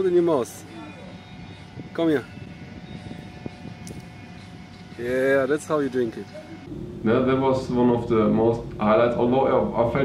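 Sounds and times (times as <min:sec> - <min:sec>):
faint constant hum: 0:00.0 - 0:10.0
low background rumble: 0:06.5 - 0:10.0.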